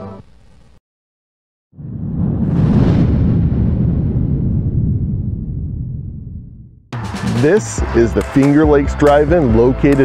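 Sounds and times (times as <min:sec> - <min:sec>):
deep rumbling boom: 0:01.8 - 0:07.5.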